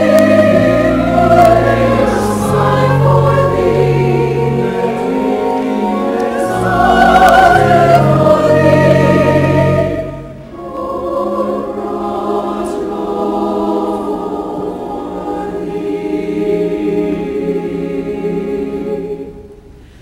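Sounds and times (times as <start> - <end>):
church choir singing: 0.0 - 19.9.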